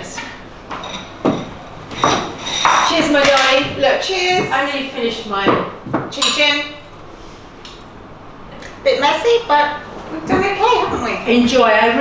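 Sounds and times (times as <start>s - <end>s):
tableware scraping: 0.2s - 4.7s
tableware knocking: 0.7s - 4.6s, 5.4s - 6.6s.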